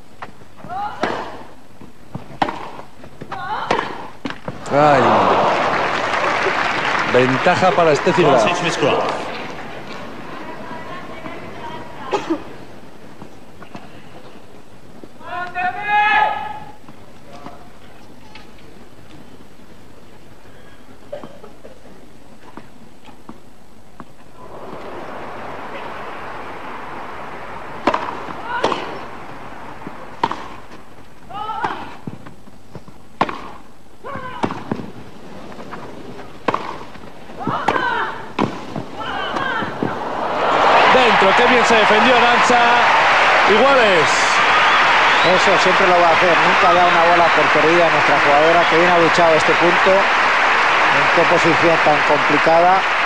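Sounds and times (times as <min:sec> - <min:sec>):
rackets hitting tennis ball: 0:00.2 - 0:01.5, 0:02.1 - 0:04.7, 0:26.4 - 0:40.0
crowd voices: 0:04.6 - 0:12.7, 0:24.3 - 0:30.2, 0:38.9 - 0:53.0
crowd murmur: 0:24.3 - 0:30.2.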